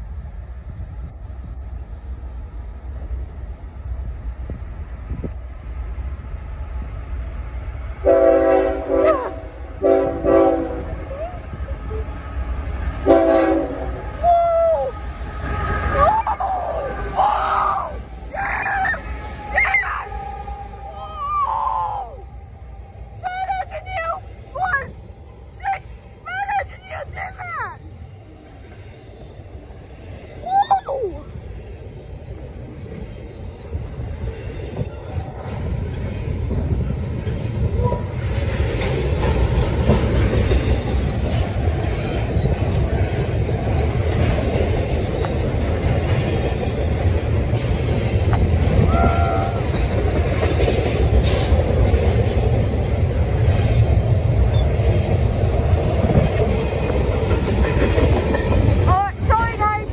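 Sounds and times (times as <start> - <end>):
freight train rumbling over rails: 0.0 - 59.9.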